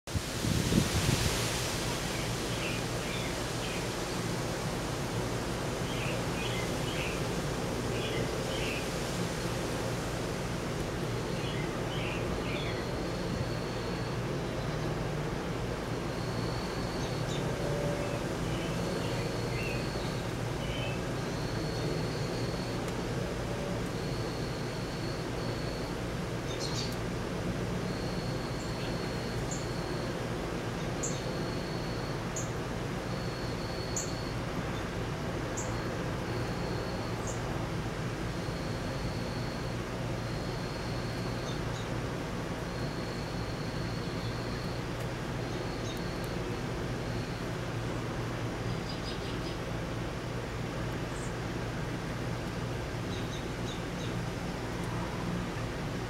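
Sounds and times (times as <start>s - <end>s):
background hiss with low hum: 0.1s - 56.0s.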